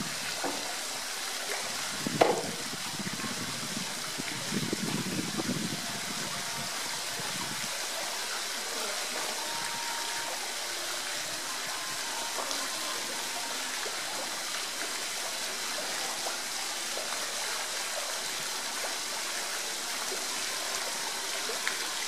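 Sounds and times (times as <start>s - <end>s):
running water rushing: 0.0s - 22.0s.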